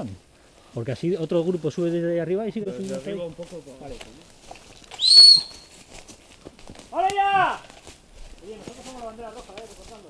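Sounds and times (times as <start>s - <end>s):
short high whistle blast: 5.0s - 5.6s.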